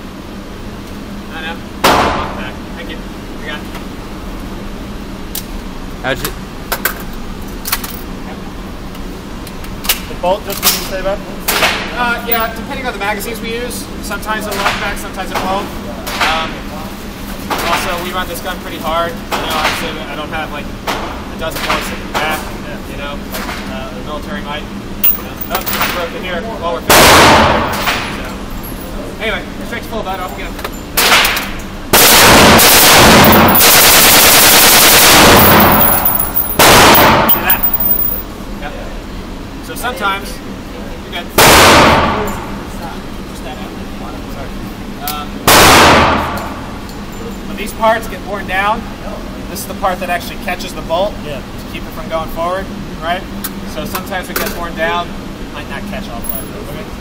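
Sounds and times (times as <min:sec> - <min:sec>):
low background hum: 0:00.0 - 0:57.0
automatic rifle fire: 0:26.9 - 0:28.0, 0:31.9 - 0:38.2, 0:41.4 - 0:42.2, 0:45.5 - 0:46.4
sharp crack: 0:26.9 - 0:28.1, 0:36.6 - 0:37.6, 0:45.5 - 0:46.4.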